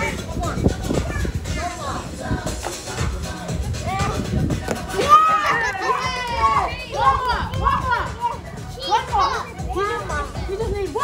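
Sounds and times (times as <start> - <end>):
children shouting excitedly: 0.0 - 2.0, 4.9 - 11.0
background music: 0.0 - 11.0.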